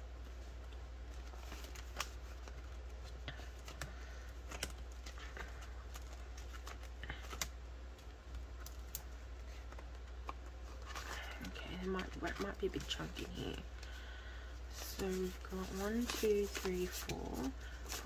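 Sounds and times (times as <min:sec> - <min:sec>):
steady low hum: 0:00.0 - 0:18.0
plastic rustling and crinkling: 0:00.2 - 0:18.0.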